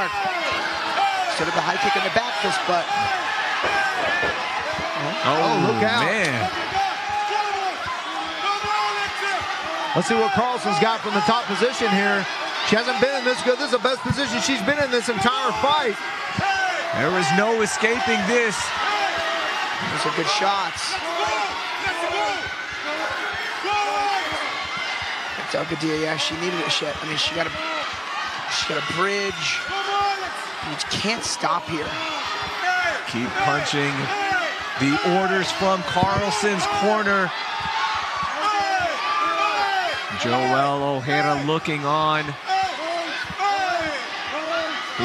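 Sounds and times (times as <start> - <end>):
people shouting: 0.0 - 45.0.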